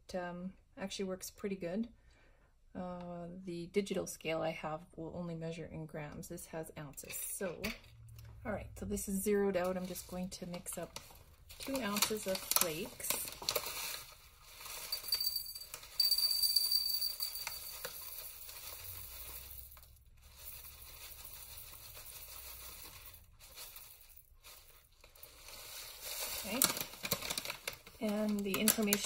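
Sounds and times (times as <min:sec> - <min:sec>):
plastic pouch crinkling: 0:09.6 - 0:15.8, 0:17.4 - 0:29.0
flakes ticking against glass: 0:14.6 - 0:24.3.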